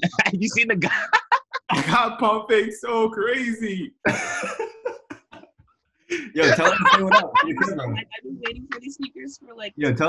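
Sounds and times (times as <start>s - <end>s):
hearty laughter: 0.0s - 5.4s, 6.1s - 8.8s.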